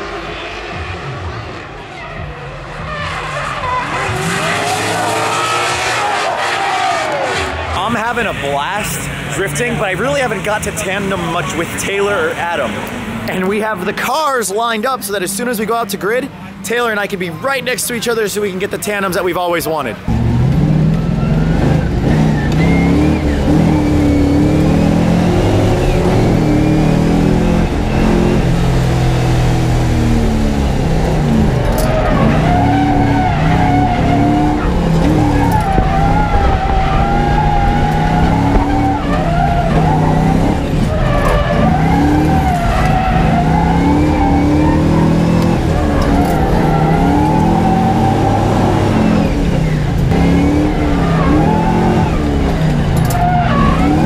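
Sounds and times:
car engine revving: 0.0s - 18.8s, 19.9s - 54.0s
tyre squeal: 21.0s - 28.4s, 31.7s - 54.0s.

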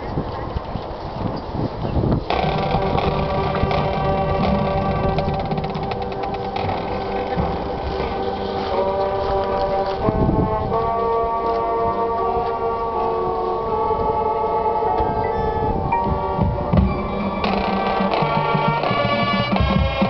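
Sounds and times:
marching band chords: 2.3s - 20.0s.

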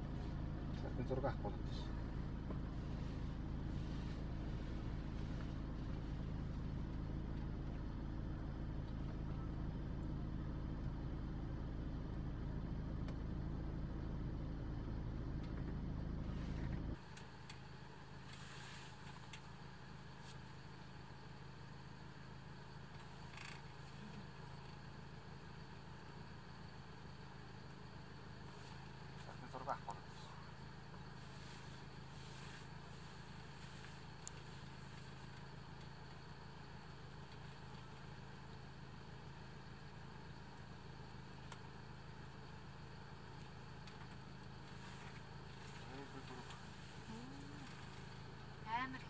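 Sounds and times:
vehicle engine idling: 0.0s - 49.0s.

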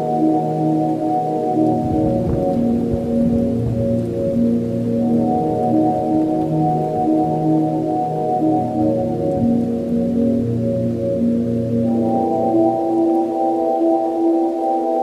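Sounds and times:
slow ambient music: 0.0s - 15.0s.

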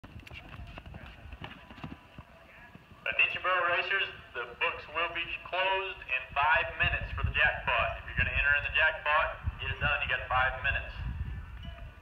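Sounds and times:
horse hoofbeats on dirt: 0.0s - 3.5s.

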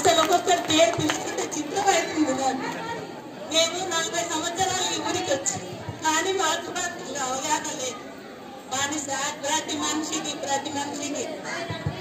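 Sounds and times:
woman speaking over loudspeaker: 0.0s - 2.7s, 3.5s - 8.0s, 8.7s - 12.0s
crowd chatter: 0.0s - 12.0s.

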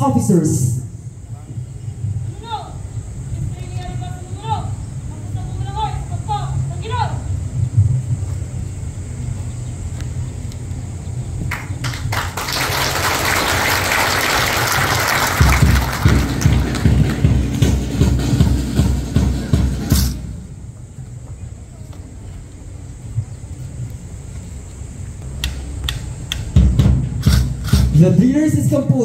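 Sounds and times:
crowd applauding: 11.5s - 18.0s.

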